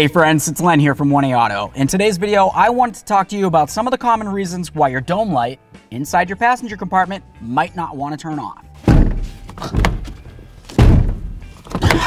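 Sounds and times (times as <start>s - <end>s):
hand banging on truck cab: 8.8s - 12.0s.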